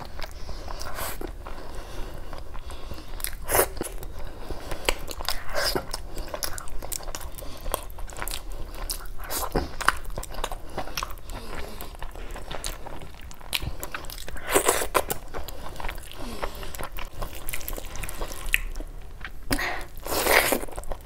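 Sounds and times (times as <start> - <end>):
chewing with wet smacks: 0.0 - 21.0.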